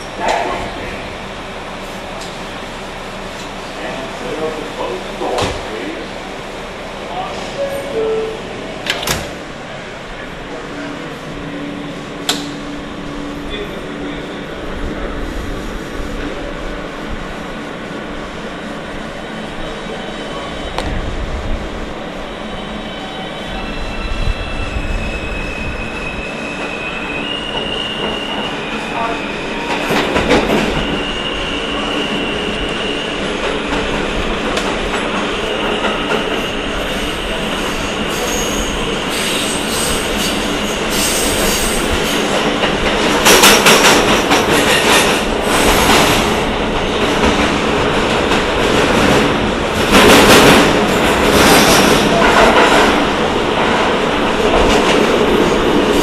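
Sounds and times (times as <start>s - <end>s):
subway train running: 0.0s - 56.0s
wheels rattling on rails: 33.2s - 56.0s.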